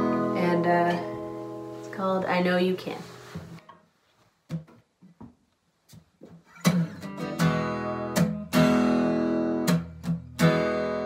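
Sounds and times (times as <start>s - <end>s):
acoustic guitar strumming chords: 0.0s - 2.5s, 6.4s - 11.0s.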